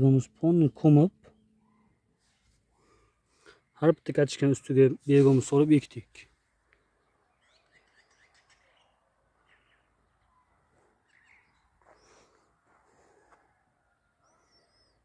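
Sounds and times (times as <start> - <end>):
faint bird chirps: 1.2 - 4.0, 6.3 - 15.0.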